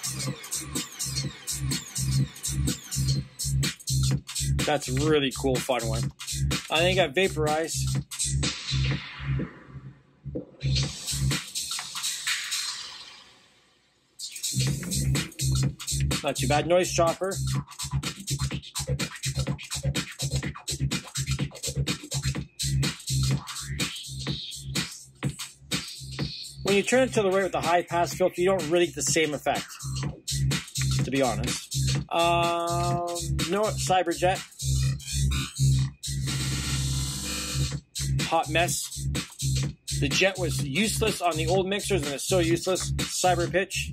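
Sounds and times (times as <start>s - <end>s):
electronic dance music: 0.0s - 9.8s, 10.6s - 13.3s, 14.2s - 43.9s.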